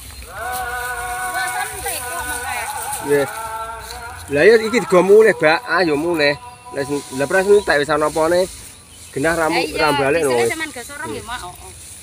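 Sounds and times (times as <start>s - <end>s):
man talking: 2.9s - 11.3s.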